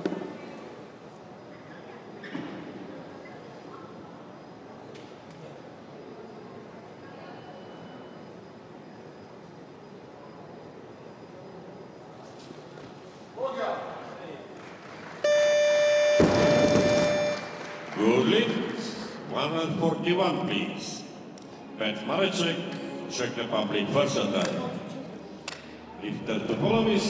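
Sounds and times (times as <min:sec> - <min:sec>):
crowd noise: 0:09.8 - 0:20.1
electronic buzzer tone: 0:15.2 - 0:17.6.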